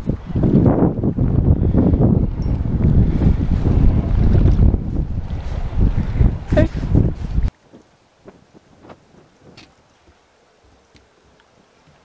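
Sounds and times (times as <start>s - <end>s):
wind buffeting microphone: 0.0s - 10.2s.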